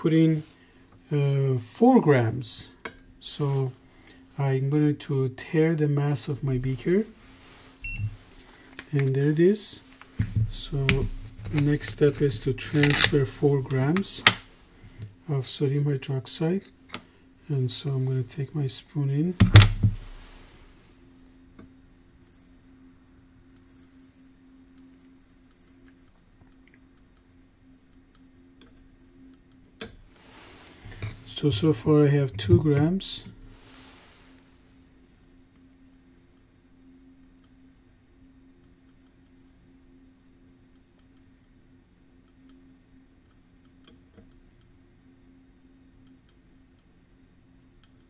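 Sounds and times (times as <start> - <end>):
low steady hum: 0.0 - 48.0
balance short high beep: 7.8 - 8.1.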